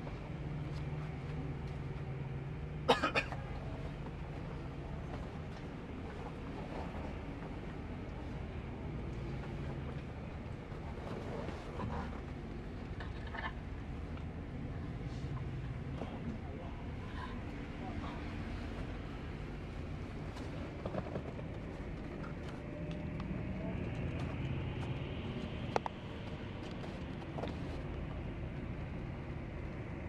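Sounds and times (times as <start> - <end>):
coach engine drone: 0.0 - 30.0
road noise: 0.0 - 30.0.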